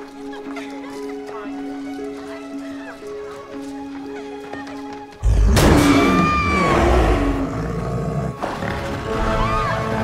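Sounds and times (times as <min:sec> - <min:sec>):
dramatic music: 0:00.1 - 0:10.0
bear roaring: 0:05.2 - 0:09.0
women screaming: 0:05.9 - 0:06.9, 0:09.2 - 0:10.0.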